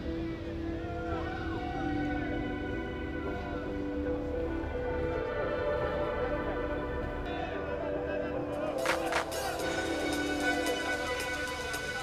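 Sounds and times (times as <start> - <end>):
ambient synth chords: 0.0 - 12.0.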